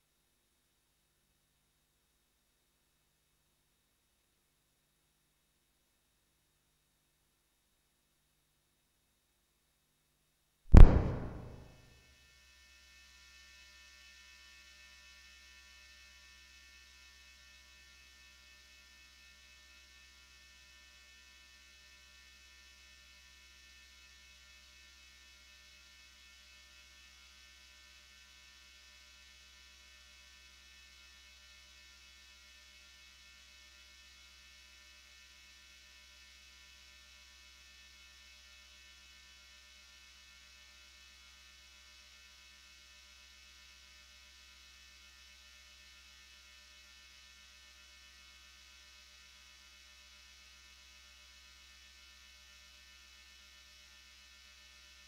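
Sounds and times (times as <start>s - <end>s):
low electrical hum: 10.7s - 11.8s.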